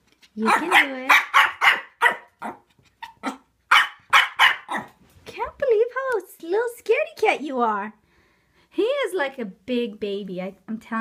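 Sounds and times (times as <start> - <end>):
puppy barking: 0.4 - 5.0.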